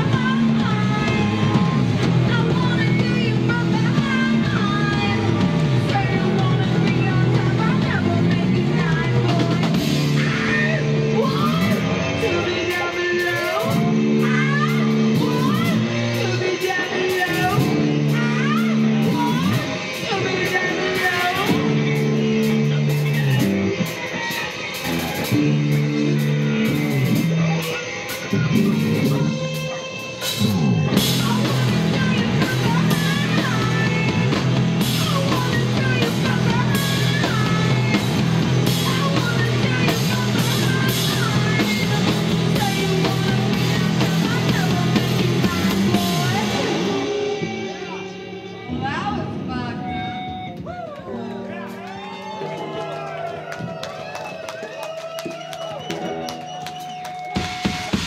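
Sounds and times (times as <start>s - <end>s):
person singing: 0.0s - 51.8s
crowd noise and voices: 0.0s - 58.0s
drum kit: 0.0s - 58.0s
electric guitar: 0.0s - 58.0s.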